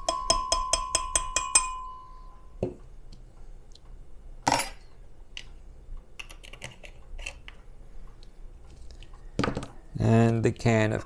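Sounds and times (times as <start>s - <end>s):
metal spoon clinking on glass: 0.0s - 2.1s.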